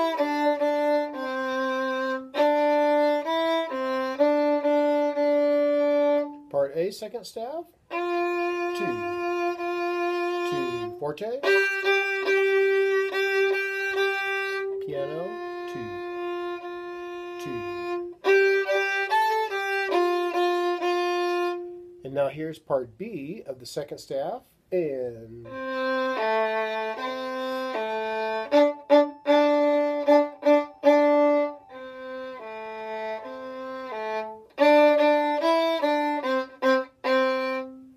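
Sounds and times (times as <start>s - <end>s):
violin bowed on one note: 0.0s - 6.6s, 7.9s - 22.3s, 25.4s - 37.9s.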